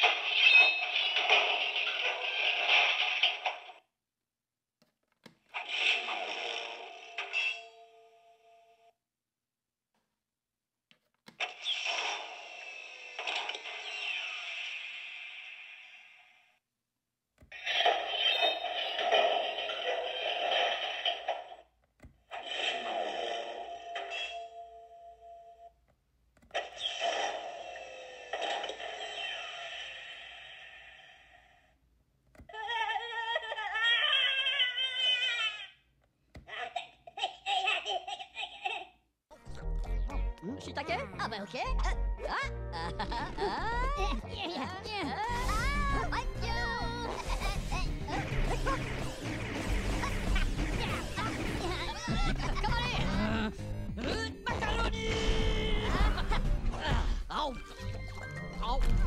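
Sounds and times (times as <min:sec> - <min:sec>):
electronic toy sound effect: 0:11.4 - 0:16.2, 0:34.1 - 0:35.8
high-pitched cartoonish toy laughter: 0:32.5 - 0:35.8, 0:36.5 - 0:39.0, 0:49.9 - 0:53.3.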